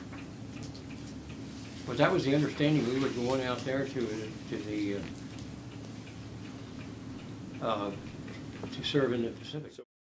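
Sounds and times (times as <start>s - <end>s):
faint ticking: 0.0s - 9.8s
low steady hum: 0.0s - 9.8s.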